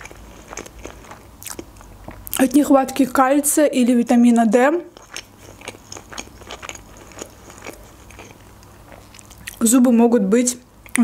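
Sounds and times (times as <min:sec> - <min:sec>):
chewing food: 0:00.0 - 0:02.6, 0:04.9 - 0:09.6.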